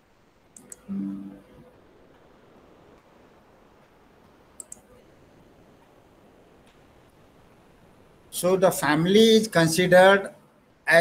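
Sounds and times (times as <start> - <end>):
faint room hiss: 0.0 - 11.0
computer mouse clicks: 0.5 - 0.9, 4.5 - 4.9.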